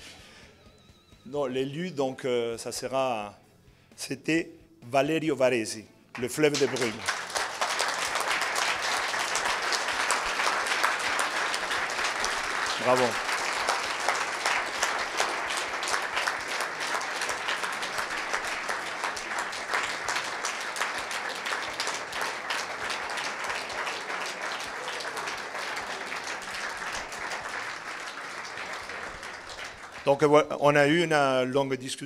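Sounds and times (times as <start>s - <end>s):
audience applauding: 6.2s - 30.3s.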